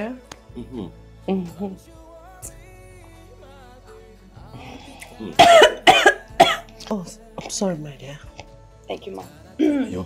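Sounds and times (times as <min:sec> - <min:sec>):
quiet background music: 0:00.0 - 0:10.0
woman coughing: 0:05.4 - 0:06.6.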